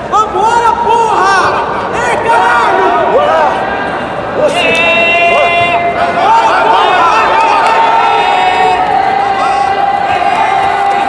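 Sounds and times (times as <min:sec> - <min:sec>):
voices shouting in a hall: 0:00.0 - 0:11.0.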